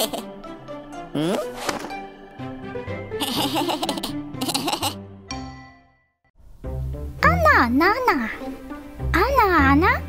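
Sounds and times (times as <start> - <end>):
cartoon character giggling laugh: 0.0 - 0.3, 3.2 - 5.0
background music: 0.0 - 10.0.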